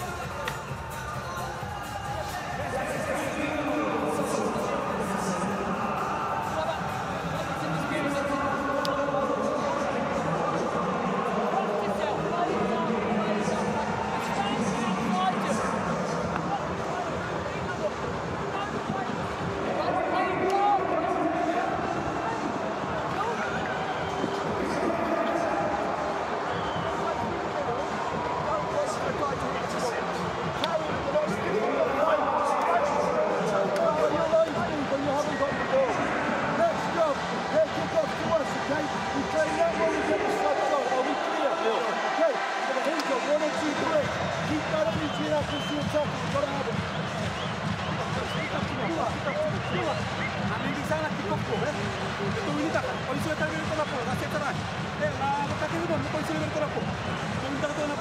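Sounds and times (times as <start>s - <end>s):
men talking: 0.0s - 58.0s
stadium crowd noise: 0.0s - 58.0s.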